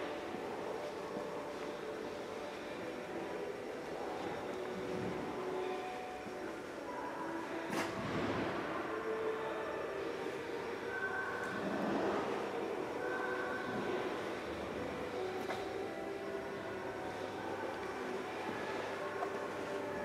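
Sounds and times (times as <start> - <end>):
reverberant exhibition hall noise: 0.0 - 20.0.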